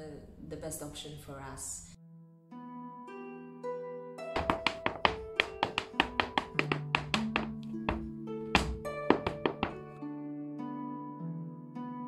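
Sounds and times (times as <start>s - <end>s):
hard-shoe dance steps on wood: 4.4s - 10.0s.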